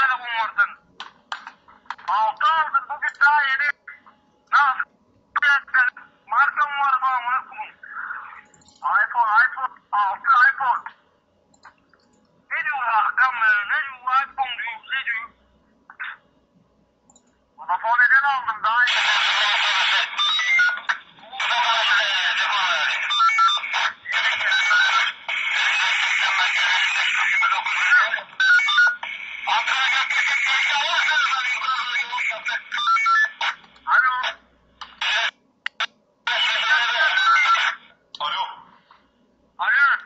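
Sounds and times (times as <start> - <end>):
voices talking over telephone: 0.0 - 11.1, 12.4 - 16.4, 17.6 - 39.0, 39.6 - 40.0.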